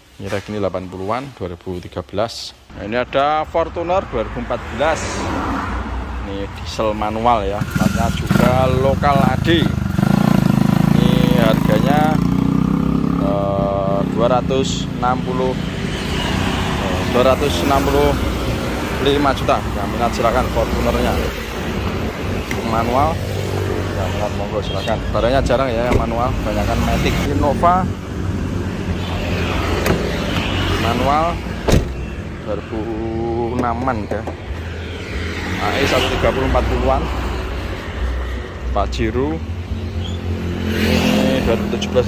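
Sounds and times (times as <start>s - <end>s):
road noise: 0.0s - 42.0s
man speaking: 0.2s - 5.4s, 6.2s - 9.8s, 10.8s - 12.3s, 13.1s - 15.7s, 16.8s - 18.2s, 19.0s - 21.5s, 23.9s - 28.0s, 30.7s - 31.5s, 32.4s - 34.3s, 35.5s - 37.2s, 41.1s - 42.0s
motor vehicle rumble: 2.7s - 42.0s.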